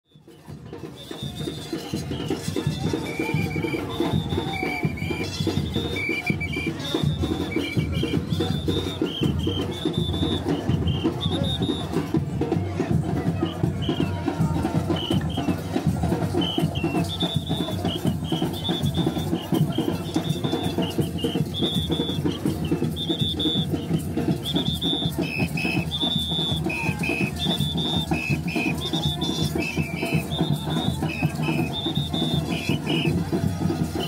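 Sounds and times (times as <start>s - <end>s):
percussion band drumming: 0.1s - 34.0s.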